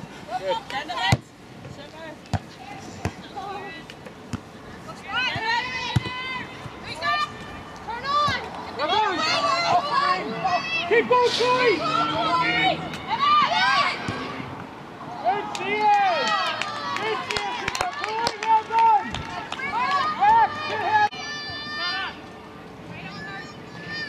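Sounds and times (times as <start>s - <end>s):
voices shouting and calling: 4.7s - 22.3s.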